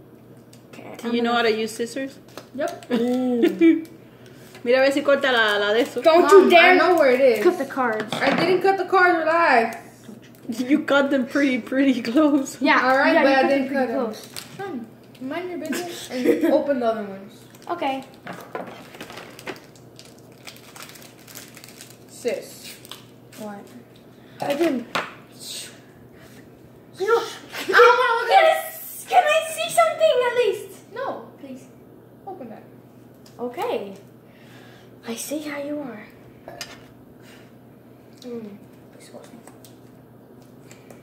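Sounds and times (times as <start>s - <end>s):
foil wrapper crinkling: 2.2s - 4.4s, 14.1s - 15.2s, 17.3s - 23.7s.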